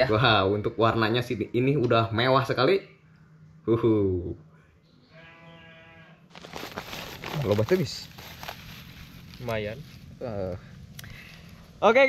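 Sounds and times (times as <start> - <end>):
plastic bag crinkling: 6.3 - 10.2.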